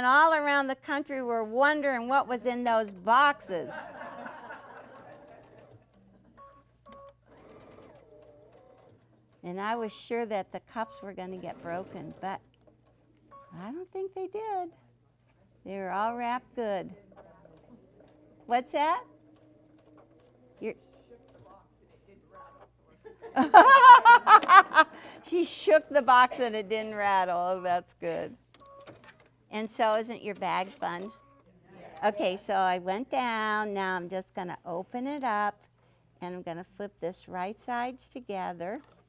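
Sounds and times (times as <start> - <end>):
sewing machine stitching: 4.8 - 6.1, 6.9 - 13.6, 16.2 - 22.7, 28.6 - 31.4.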